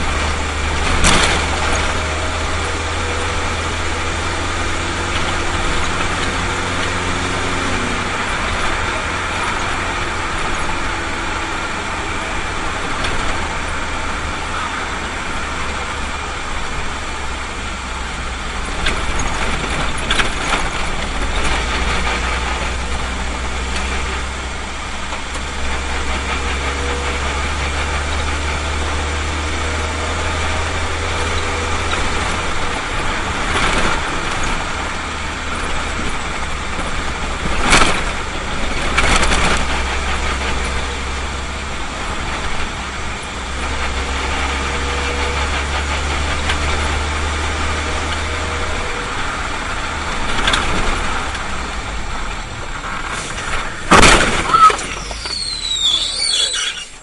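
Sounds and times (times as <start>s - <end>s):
road noise: 0.0s - 57.0s
vehicle engine drone: 0.0s - 57.0s.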